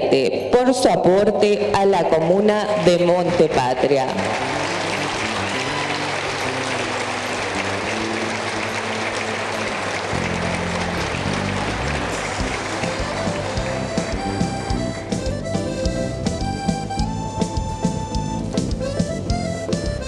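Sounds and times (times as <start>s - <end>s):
audience applauding: 2.8s - 17.6s
background music with bass line: 10.0s - 20.0s.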